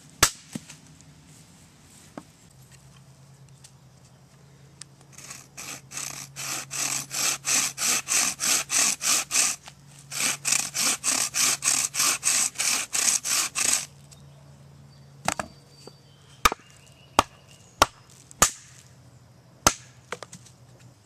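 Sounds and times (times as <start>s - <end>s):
bow saw cutting branch: 5.1s - 13.9s.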